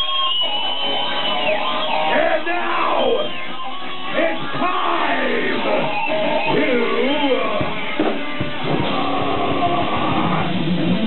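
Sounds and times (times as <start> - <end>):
distorted electric guitar: 0.0 - 11.0
metal band drums: 2.5 - 11.0.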